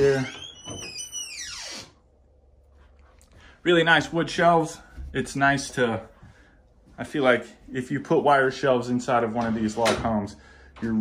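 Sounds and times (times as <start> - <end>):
door hinge creaking: 0.0 - 2.0.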